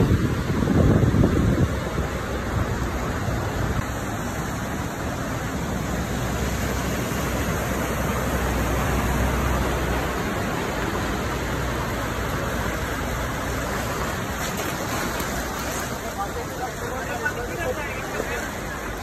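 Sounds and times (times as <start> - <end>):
floodwater rushing: 0.0 - 19.0.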